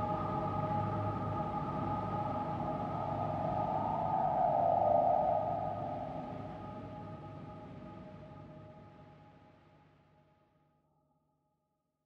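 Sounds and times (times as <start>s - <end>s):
ambient drone tones: 1.4s - 7.1s.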